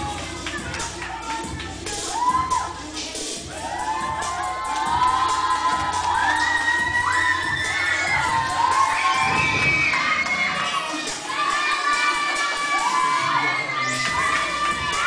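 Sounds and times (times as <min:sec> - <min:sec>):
children shouting and cheering: 0:00.0 - 0:15.0.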